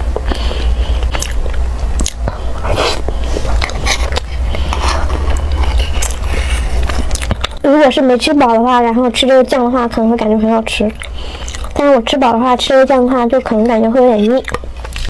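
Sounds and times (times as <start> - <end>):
chewing and lip noises: 0.0 - 7.7, 10.2 - 15.0
steady low hum: 0.0 - 15.0.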